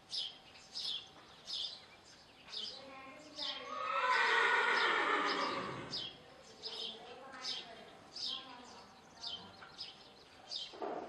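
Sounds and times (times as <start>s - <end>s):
birds chirping: 0.0s - 11.0s
horse whinnying: 3.6s - 6.0s.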